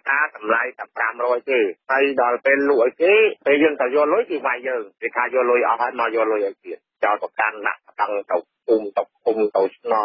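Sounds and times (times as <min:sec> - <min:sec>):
person reading news on radio: 0:00.0 - 0:10.0.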